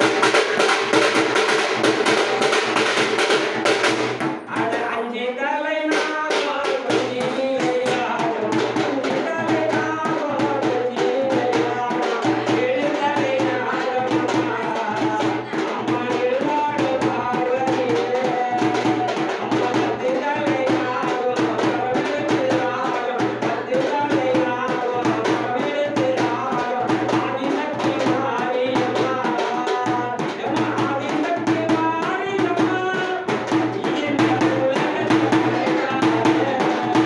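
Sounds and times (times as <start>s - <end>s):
frame drum beaten with stick: 0.0s - 5.0s, 5.9s - 37.0s
man singing a devotional chant: 0.0s - 37.0s.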